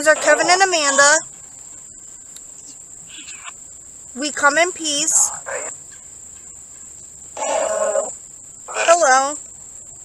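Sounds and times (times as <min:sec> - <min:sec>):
person speaking: 0:00.0 - 0:01.2, 0:08.7 - 0:09.4
crickets trilling: 0:00.0 - 0:10.0.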